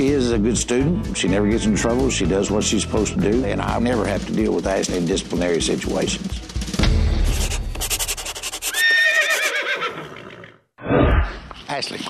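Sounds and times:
horse whinnying: 8.6s - 11.4s.

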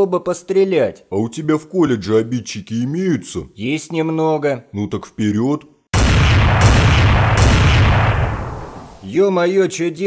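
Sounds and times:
cartoon explosion boom with rumble: 6.0s - 9.1s
sharp noise bursts: 6.0s - 9.1s.

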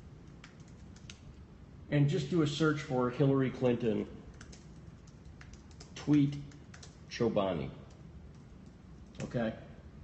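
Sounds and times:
computer keyboard keystrokes: 0.2s - 1.2s, 4.3s - 7.0s, 7.9s - 9.3s.

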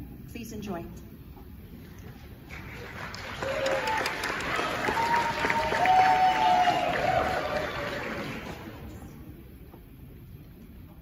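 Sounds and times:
audience applauding: 2.4s - 9.1s.

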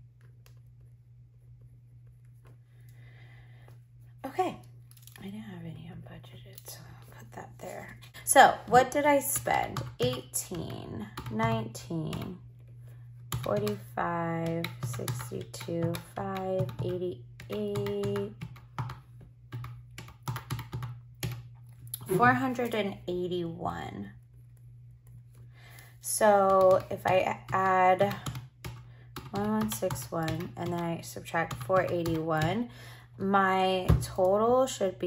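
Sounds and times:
calculator keys clicking: 14.4s - 21.4s.

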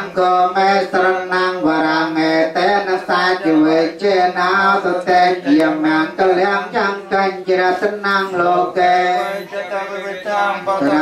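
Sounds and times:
voices chanting verses: 0.0s - 11.0s.

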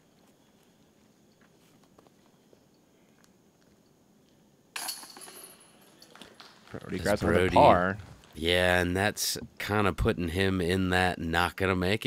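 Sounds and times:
disc golf basket chains jingling: 4.8s - 6.2s.

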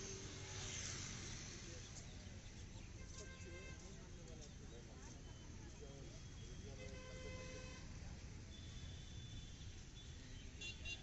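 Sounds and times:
car horn toot: 10.6s - 11.0s.

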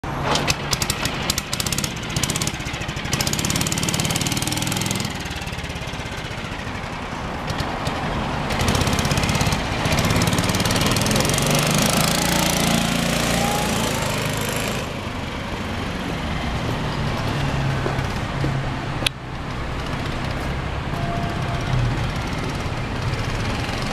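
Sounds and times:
scooter engine running: 0.4s - 23.9s.

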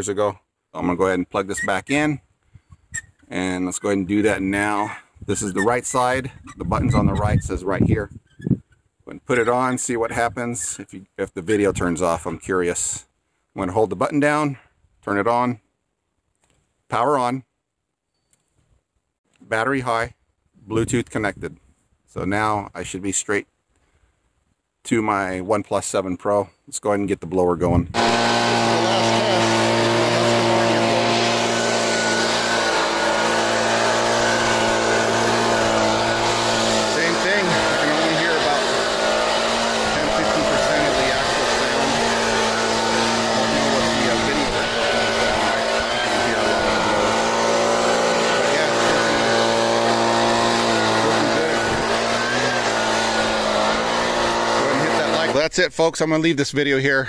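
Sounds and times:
leaf blower engine running: 28.0s - 55.5s.

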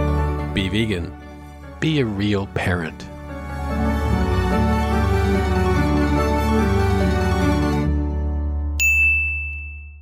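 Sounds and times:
bright ding chime: 8.8s - 10.0s.

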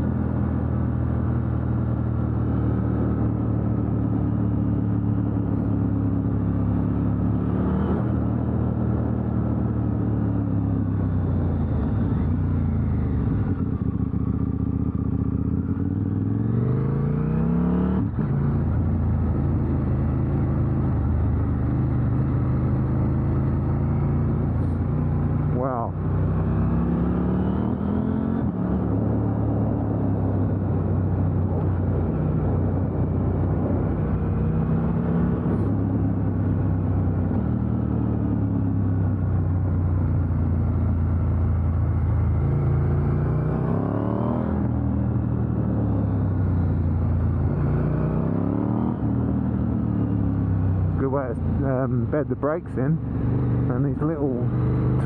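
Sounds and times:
motorcycle engine accelerating: 0.0s - 55.0s.

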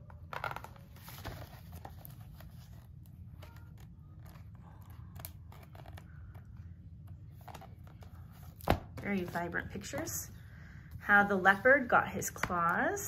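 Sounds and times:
paper pages rustling: 0.2s - 6.6s.

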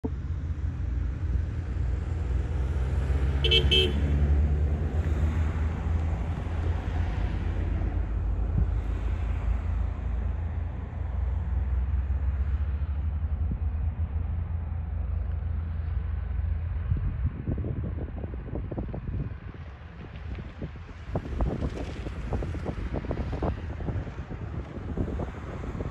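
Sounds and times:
wind buffeting microphone: 16.8s - 25.9s.

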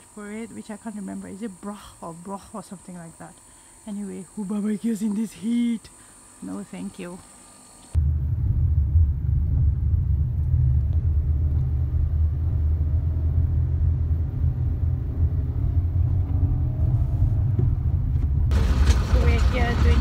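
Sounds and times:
car road and wind noise: 8.0s - 20.0s.

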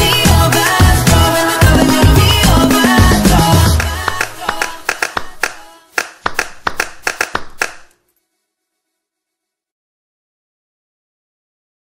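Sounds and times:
afropop song: 0.0s - 7.8s
rhythmic handclaps: 0.0s - 8.0s.

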